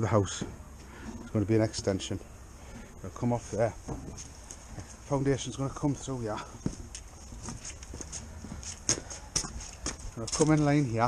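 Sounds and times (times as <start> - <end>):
footsteps on concrete: 3.8 - 5.3, 5.9 - 10.8.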